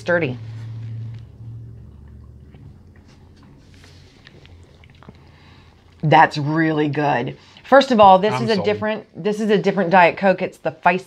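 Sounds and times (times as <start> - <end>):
low steady hum: 0.0 - 11.0
sipping and swallowing drink: 1.7 - 6.0.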